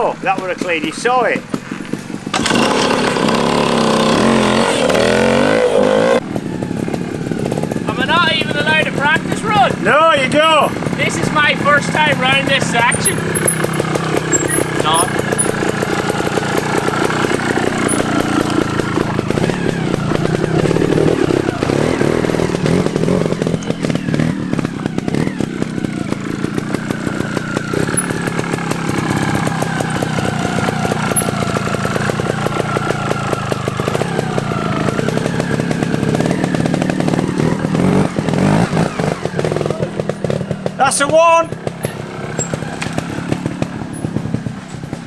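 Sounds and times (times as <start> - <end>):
motorcycle engine revving: 0.0 - 45.0.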